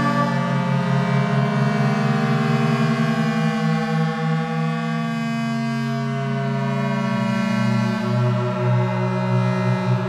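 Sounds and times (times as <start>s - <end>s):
electroacoustic drone music: 0.0s - 10.0s.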